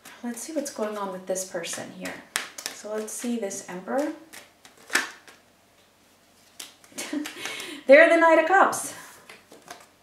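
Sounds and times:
cards clicking on table: 2.0s - 5.4s
card snap: 2.3s - 3.2s, 4.0s - 5.4s.

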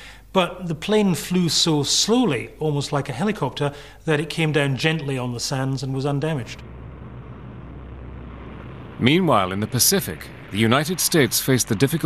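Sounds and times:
propeller aircraft engines droning: 6.4s - 12.0s.

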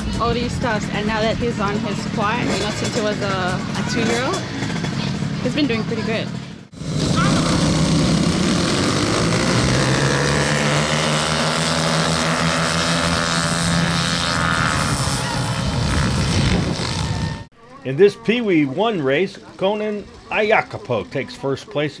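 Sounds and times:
dirt bike engines revving: 0.0s - 19.3s.

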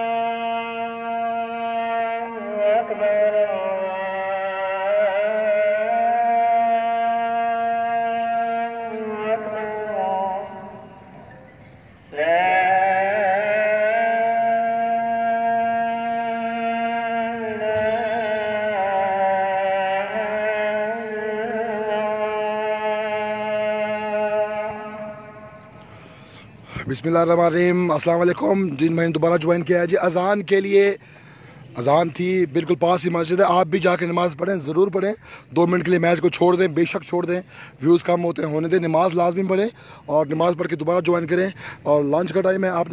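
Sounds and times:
man chanting call to prayer: 0.0s - 42.9s.

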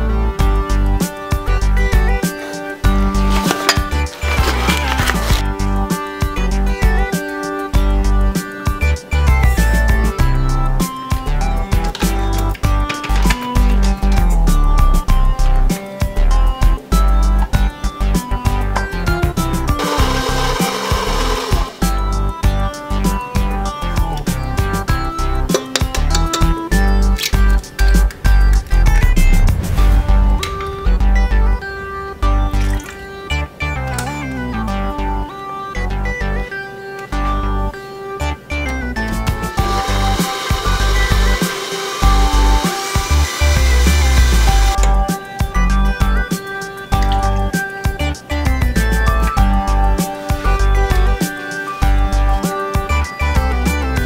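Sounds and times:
background guitar music: 0.0s - 54.0s
stand mixer whirring: 19.8s - 21.8s, 39.6s - 44.8s.

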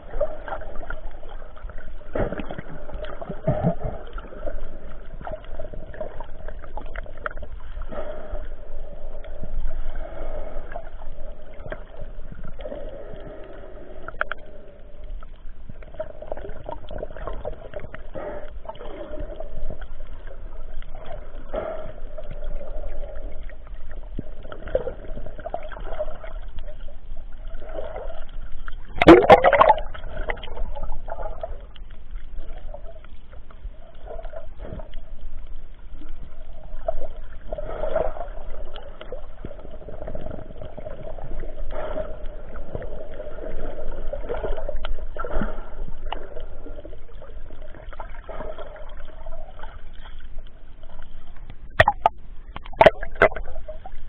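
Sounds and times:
muffled water gurgling: 0.0s - 54.0s
water splash: 28.8s - 31.2s, 51.6s - 53.9s.

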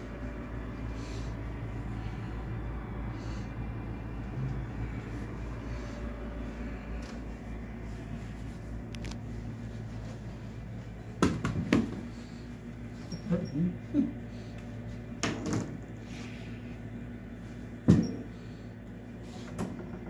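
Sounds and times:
fan humming: 0.0s - 20.0s.

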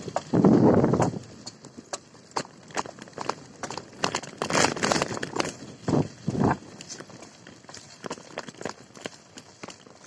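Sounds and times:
tyres rolling over dirt path: 0.0s - 10.0s.

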